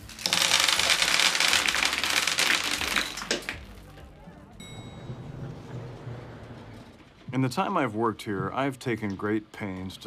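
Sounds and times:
jelly beans scattering on countertop: 0:00.1 - 0:03.8.

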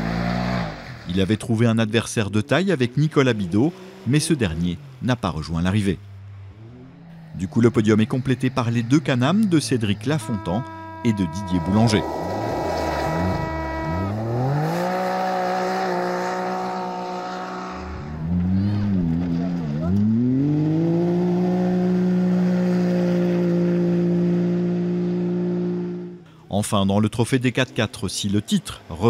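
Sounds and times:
buggy engines accelerating hard: 0:00.0 - 0:26.3.

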